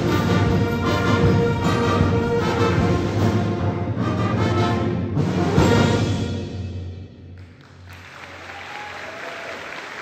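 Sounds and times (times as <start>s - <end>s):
audience applauding: 7.4s - 10.0s.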